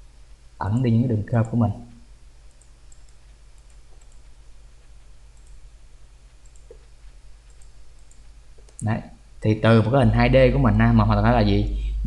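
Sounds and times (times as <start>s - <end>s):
steady low hum: 0.0s - 12.0s
computer mouse clicks: 2.5s - 5.6s, 6.3s - 8.9s.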